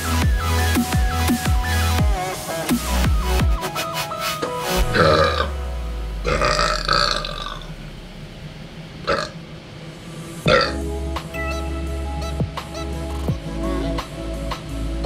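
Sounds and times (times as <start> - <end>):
electronic music: 0.0 - 9.0, 10.5 - 15.0
man burping: 4.8 - 5.6, 6.2 - 7.7, 10.5 - 10.8.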